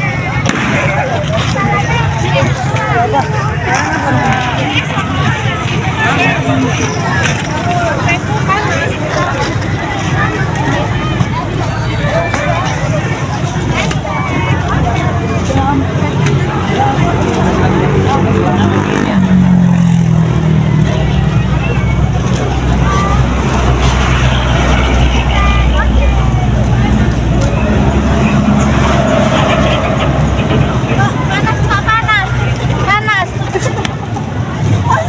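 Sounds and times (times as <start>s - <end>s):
people chattering: 0.0s - 35.0s
truck engine running: 0.0s - 35.0s.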